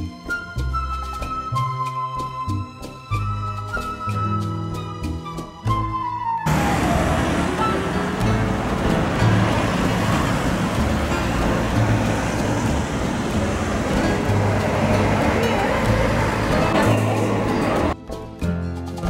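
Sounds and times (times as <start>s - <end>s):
background music: 0.0s - 19.0s
city street traffic: 2.2s - 18.0s.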